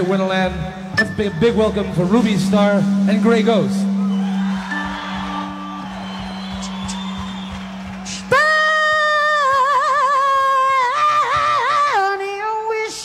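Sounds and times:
faint stage noise: 0.0 - 13.0.

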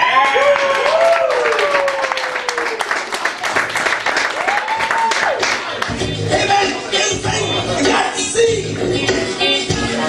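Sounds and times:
people whooping: 0.0 - 3.0, 4.3 - 5.8
audience applauding: 0.0 - 6.0.

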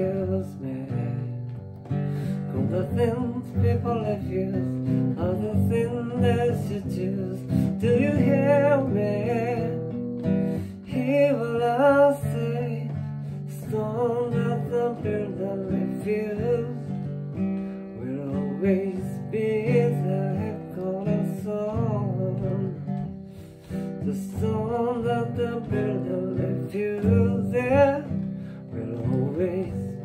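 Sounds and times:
acoustic guitar strummed reggae style: 0.0 - 30.0
man singing: 0.0 - 30.0.

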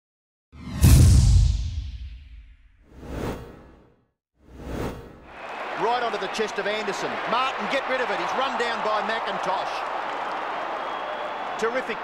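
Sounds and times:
man commentating: 5.4 - 9.9, 11.5 - 12.0.

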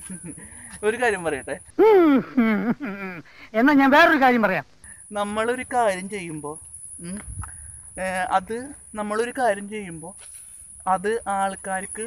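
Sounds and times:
insects droning: 0.0 - 12.0
man talking: 10.9 - 12.0.

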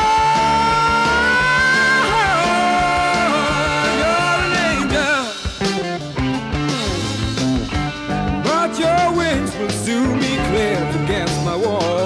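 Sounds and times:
psychedelic rock band instrumental: 0.0 - 12.0.

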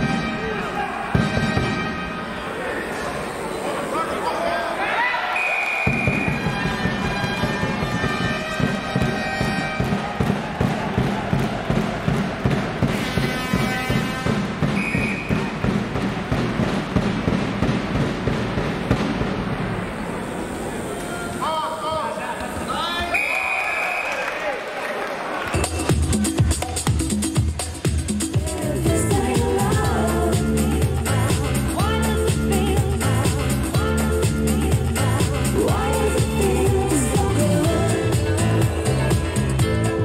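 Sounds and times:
crowd drum beating: 1.0 - 1.9, 5.7 - 20.4
referee's whistle blasts: 5.3 - 8.4, 14.7 - 15.6, 23.0 - 24.3
held horn-like tones: 5.3 - 9.9, 12.8 - 15.7.

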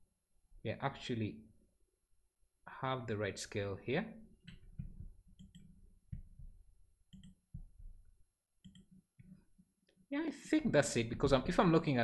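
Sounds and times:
mouse and keyboard clicks: 7.1 - 7.6, 8.6 - 9.4.

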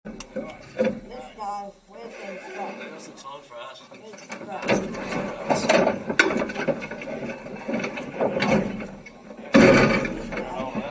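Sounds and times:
muffled voices talking: 0.1 - 10.9.

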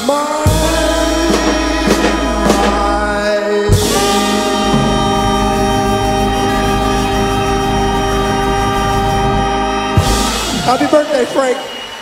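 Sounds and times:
swing band final chord: 0.5 - 10.4.

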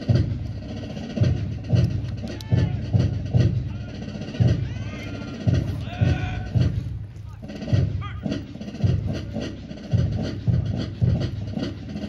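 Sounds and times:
bass drum beat: 0.0 - 12.0
march music: 0.0 - 12.0
light percussive clicks: 1.8 - 2.5.

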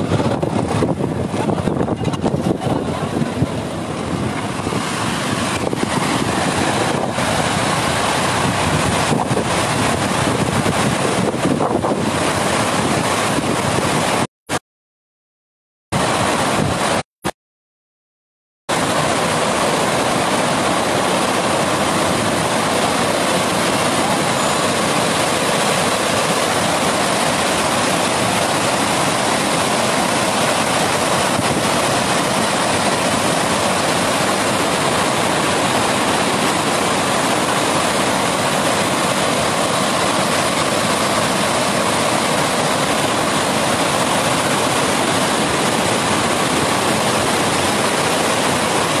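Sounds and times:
water rushing down spillway: 0.0 - 14.3, 16.0 - 17.1, 18.7 - 49.0.

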